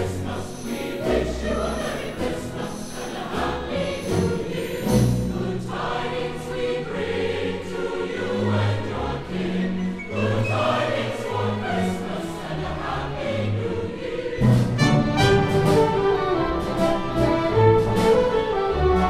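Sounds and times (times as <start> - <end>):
choir singing a carol: 0.0 - 19.0.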